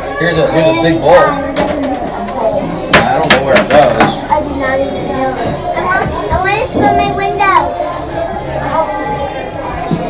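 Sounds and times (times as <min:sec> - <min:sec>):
children's voices: 0:04.1 - 0:10.0.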